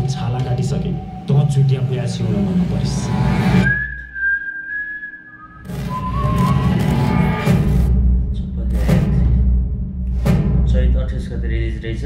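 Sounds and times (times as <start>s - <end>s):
high whistle-like tone: 0.8s - 7.5s.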